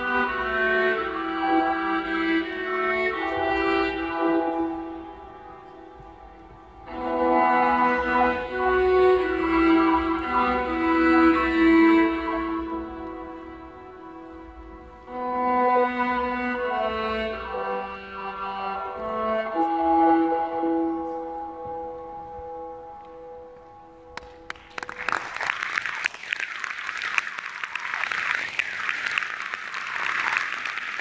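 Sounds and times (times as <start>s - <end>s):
slow music of long held notes: 0.0s - 27.3s
audience applause: 24.2s - 31.0s.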